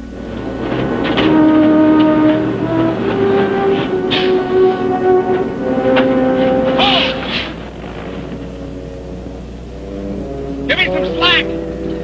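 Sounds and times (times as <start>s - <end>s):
dramatic background music: 0.0s - 12.0s.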